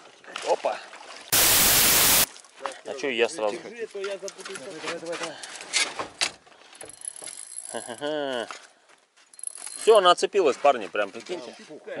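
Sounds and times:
fishing tackle clicking and rattling: 6.8s - 8.0s, 9.4s - 10.0s.

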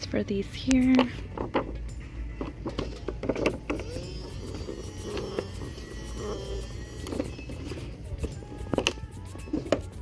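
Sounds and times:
toy electric motor whirring: 2.7s - 10.0s.

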